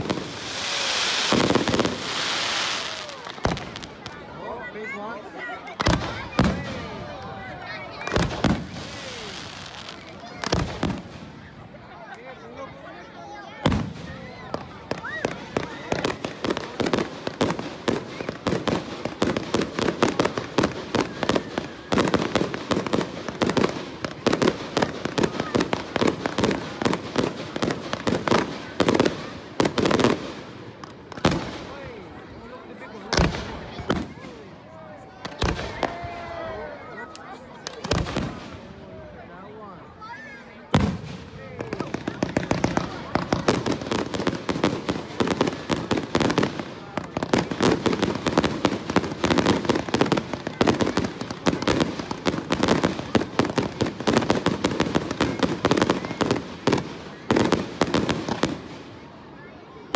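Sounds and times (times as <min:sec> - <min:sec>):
fireworks crackling and banging: 0:00.0 - 0:39.2, 0:39.8 - 0:59.9.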